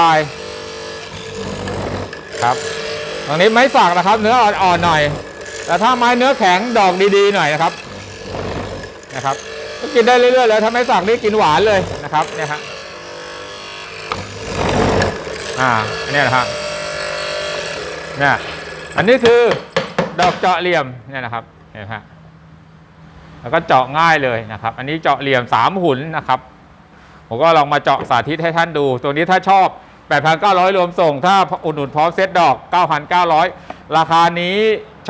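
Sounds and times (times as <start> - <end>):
mortiser motor hum: 0.0 - 19.5
chisel cutting into wood: 0.3 - 20.4.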